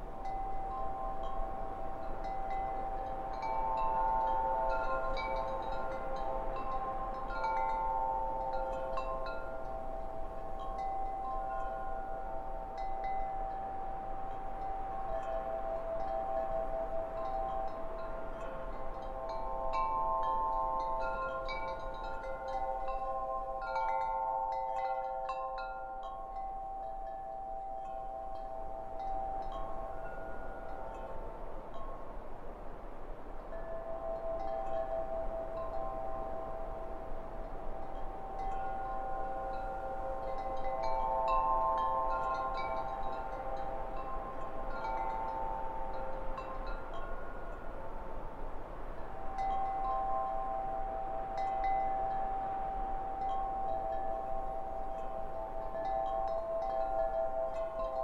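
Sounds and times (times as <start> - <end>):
wind chimes ringing: 0.0 - 58.0.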